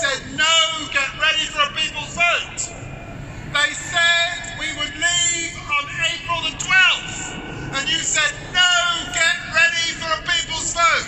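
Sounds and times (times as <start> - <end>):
man speaking over public address: 0.0 - 11.0.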